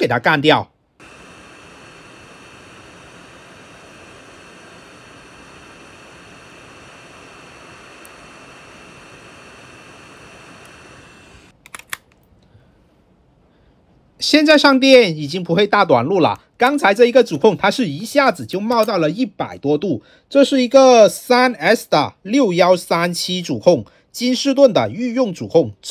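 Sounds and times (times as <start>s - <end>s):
hot-air station hissing: 1.0s - 11.6s.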